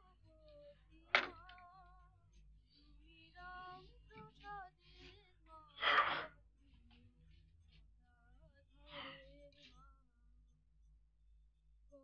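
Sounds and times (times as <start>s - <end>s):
person softly singing: 0.0s - 7.4s, 8.0s - 10.3s.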